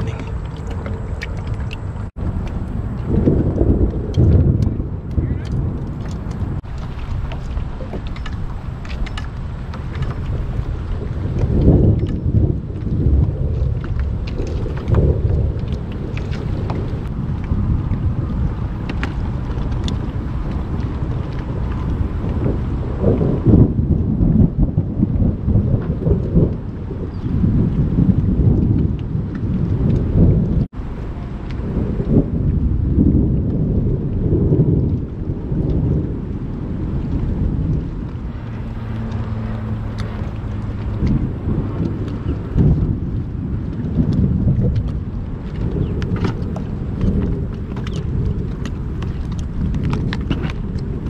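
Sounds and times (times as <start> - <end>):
thunder rolling: 0.0 - 51.0
wind buffeting microphone: 0.0 - 51.0.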